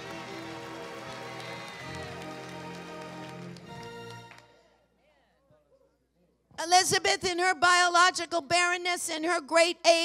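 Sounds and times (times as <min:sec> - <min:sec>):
scattered clapping: 0:00.0 - 0:04.5.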